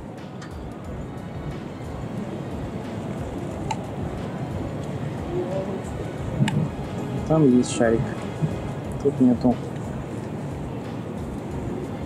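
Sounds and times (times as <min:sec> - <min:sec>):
low even outdoor rush: 0:00.0 - 0:12.0
faint distant voices: 0:01.3 - 0:12.0.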